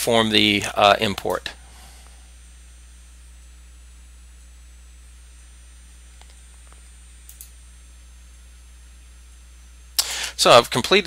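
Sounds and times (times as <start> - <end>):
low electrical hum: 0.0 - 11.0
computer mouse clicking: 6.2 - 7.5.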